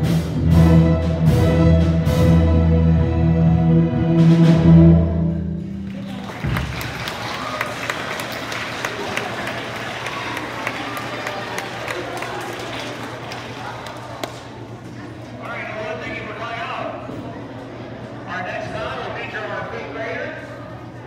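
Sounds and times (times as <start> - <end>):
crowd chatter: 0.0 - 21.0
children applauding: 5.7 - 14.6.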